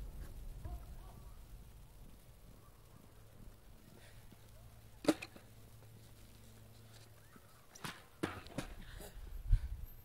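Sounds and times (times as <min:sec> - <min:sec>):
faint low background noise: 0:00.0 - 0:10.0
skateboard clacking on street: 0:07.7 - 0:08.8.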